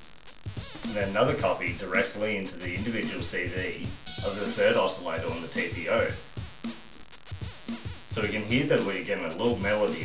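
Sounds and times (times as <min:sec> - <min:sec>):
electronic drum loop: 0:00.0 - 0:10.0.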